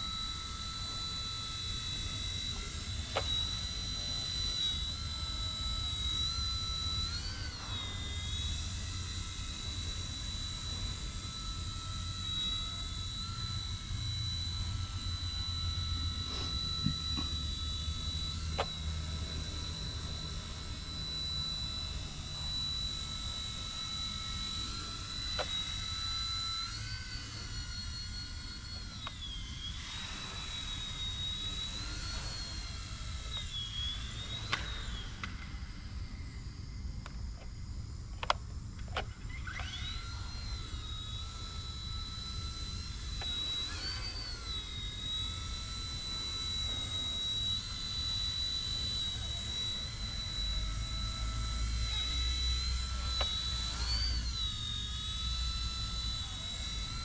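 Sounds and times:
toy helicopter motor whine: 0.0 - 57.0.

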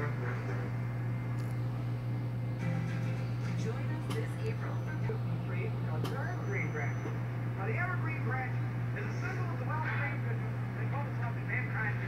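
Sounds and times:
faint television sound: 0.0 - 2.0, 3.2 - 12.0
low room hum: 0.0 - 12.0.

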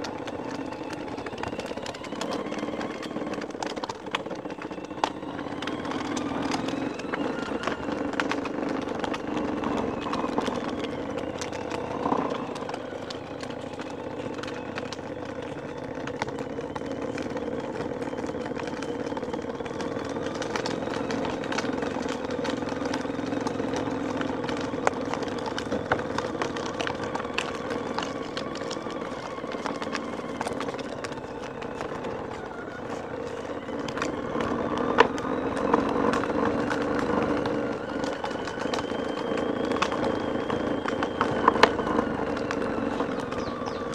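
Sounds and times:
toy motorcycle motor hum: 0.0 - 43.9.

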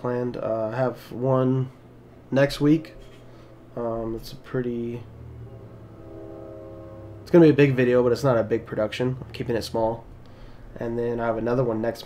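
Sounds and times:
low steady hum: 0.0 - 12.0
man speaking: 3.7 - 5.1, 7.2 - 10.1, 10.8 - 12.0.

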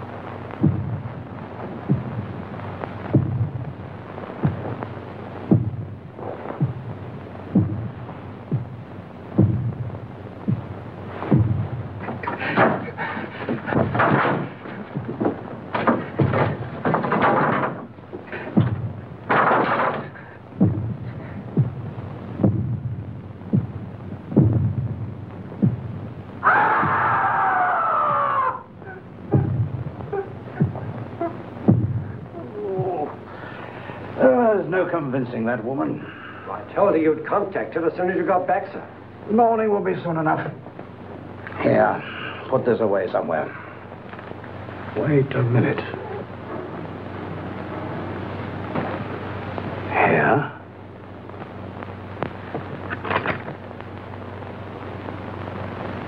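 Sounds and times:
heavy heartbeat thuds: 0.0 - 34.0.

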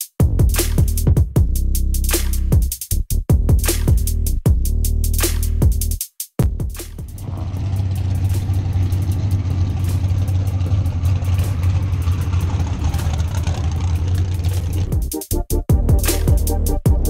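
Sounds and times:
vehicle engine idling: 7.1 - 15.2.

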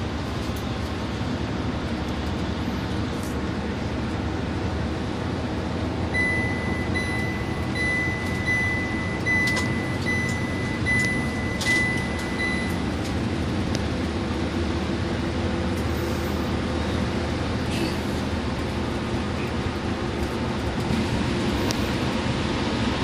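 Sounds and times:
coach engine and road rumble: 0.0 - 23.0
high electronic beep: 6.1 - 12.8.

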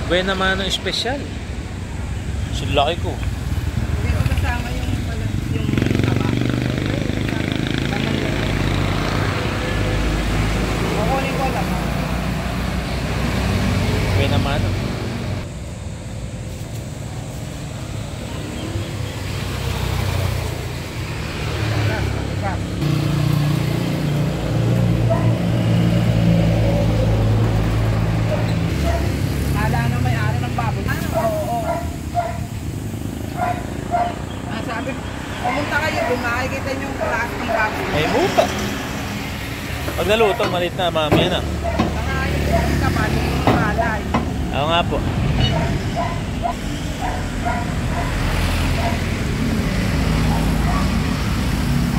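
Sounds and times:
road traffic rumble: 0.0 - 51.9
vehicle engine humming: 0.0 - 51.9
people talking: 4.0 - 8.6, 29.5 - 31.8, 34.5 - 38.6, 39.9 - 45.7
people talking indistinctly: 33.3 - 38.8, 39.6 - 47.7.

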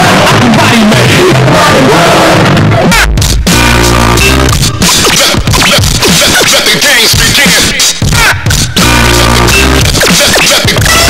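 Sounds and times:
hip hop music: 0.0 - 11.0
turntable record scratches: 0.0 - 11.0.

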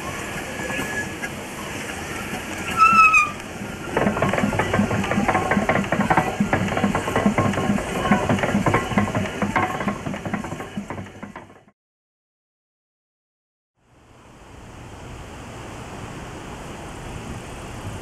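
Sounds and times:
brief high squeal: 0.5 - 1.3, 2.6 - 3.4
steam engine rhythmic beat: 3.6 - 11.7.

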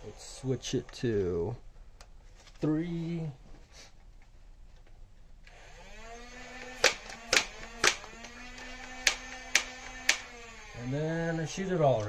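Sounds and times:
foam-dart blaster firing clacks: 6.7 - 8.2, 9.0 - 10.3.

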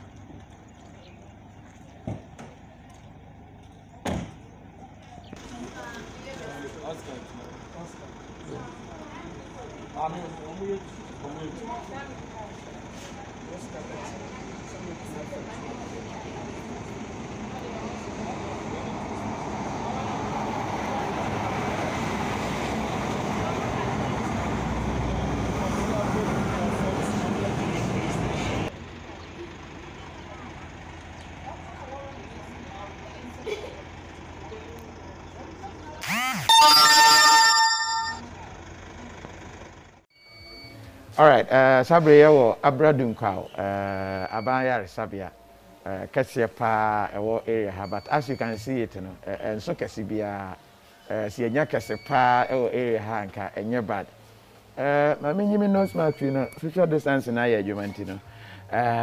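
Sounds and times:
vehicle rumble: 0.0 - 36.1, 38.2 - 40.0
loud pitched horn blast: 36.1 - 38.2.

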